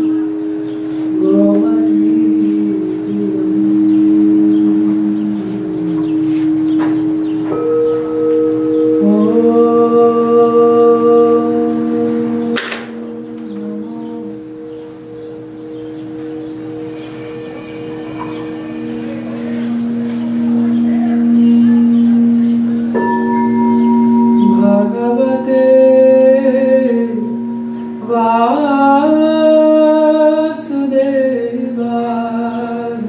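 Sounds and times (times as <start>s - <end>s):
low drone note: 0.0s - 30.8s
singing bowls ringing: 0.0s - 33.0s.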